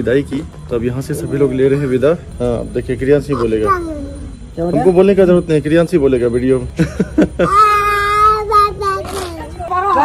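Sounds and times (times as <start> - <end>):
toddler squealing: 3.3 - 4.3.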